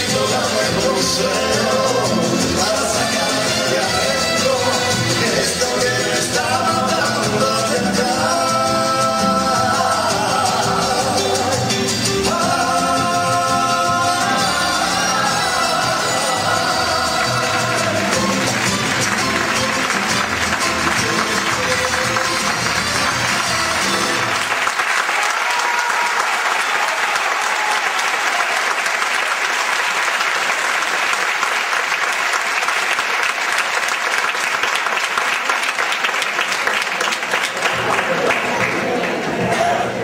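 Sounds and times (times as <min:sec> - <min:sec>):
live band with singers: 0:00.0 - 0:24.6, 0:37.2 - 0:40.0
audience applauding: 0:14.0 - 0:40.0.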